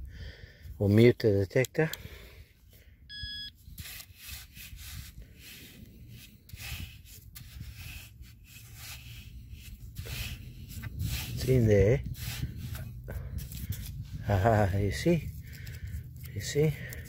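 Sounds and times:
short electronic beep: 3.1 - 3.5
rubbing and scuffing: 3.6 - 17.0.

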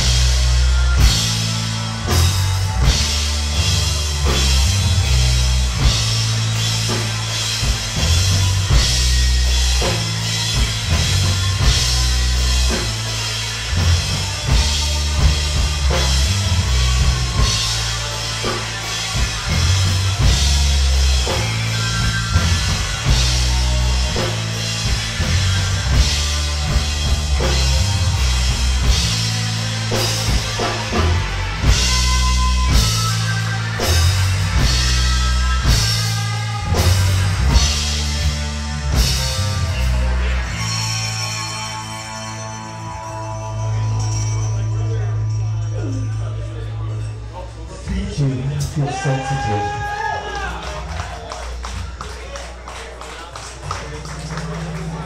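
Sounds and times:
electric guitars: 0.0 - 47.1
drum kit with cymbals: 0.0 - 55.0
heavy bass line: 0.0 - 55.0.

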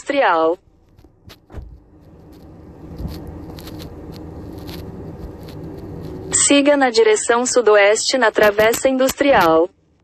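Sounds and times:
car cabin noise: 0.4 - 7.2.

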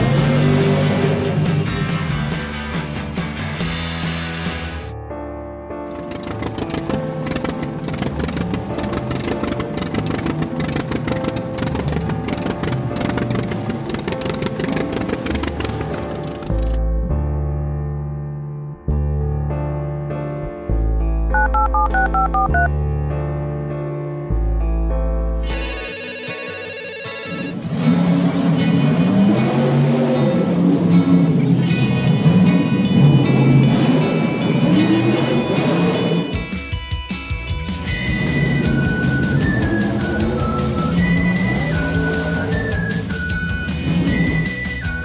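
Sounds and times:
background music: 0.0 - 45.0
cartoon truck engine running: 5.9 - 16.8, 21.4 - 22.7, 27.1 - 45.0
warbling cartoon ringtone: 21.4 - 22.7, 25.5 - 27.6.

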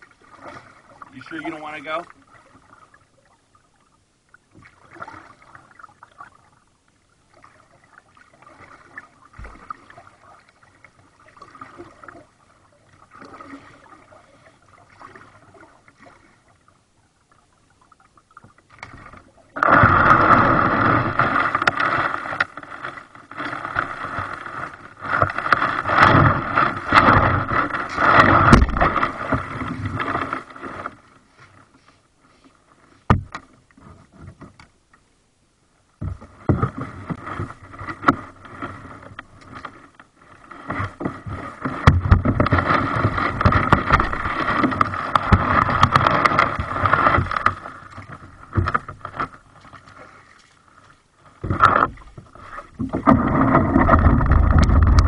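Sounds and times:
kayak hull scraping over gravel: 0.0 - 2.6, 18.9 - 34.4, 36.0 - 55.0.

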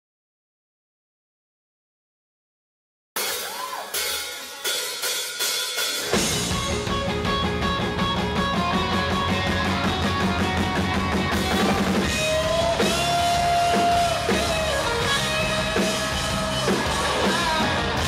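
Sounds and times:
drum kit: 3.2 - 18.0
bass guitar: 6.0 - 18.0
electric guitars: 6.0 - 18.0.

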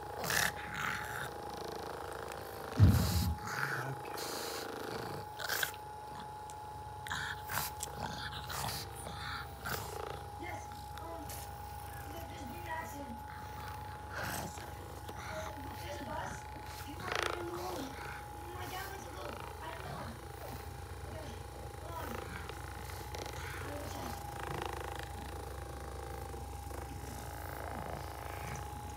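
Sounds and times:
massage gun buzzing: 0.0 - 28.9.

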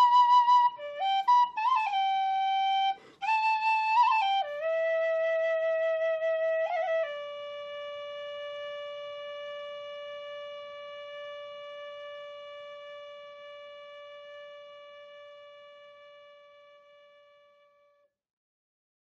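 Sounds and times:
tin whistle long note: 0.0 - 17.7.

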